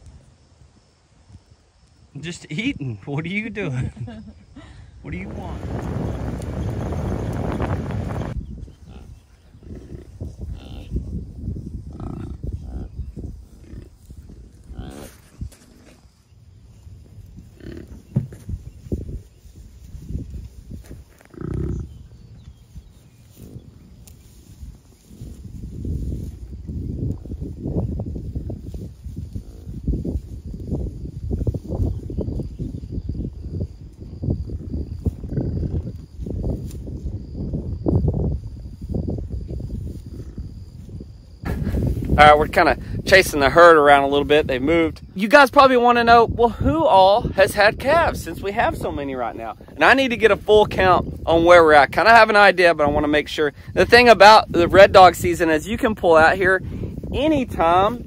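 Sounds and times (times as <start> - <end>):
bison grunting: 21.2 - 21.9.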